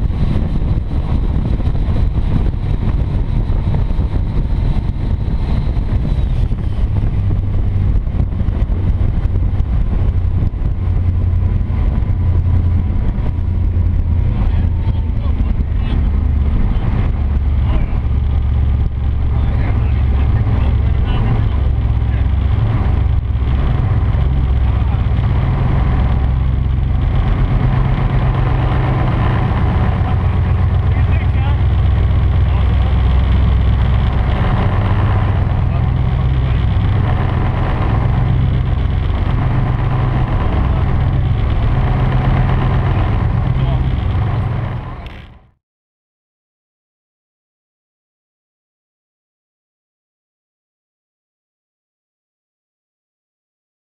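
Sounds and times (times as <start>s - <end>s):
rushing water from wake: 0.0s - 45.3s
boat engines droning: 0.0s - 45.6s.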